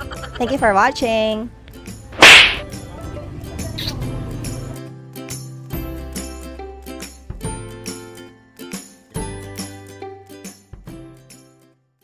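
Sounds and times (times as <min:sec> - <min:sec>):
sharp swish: 0:02.2 - 0:02.7.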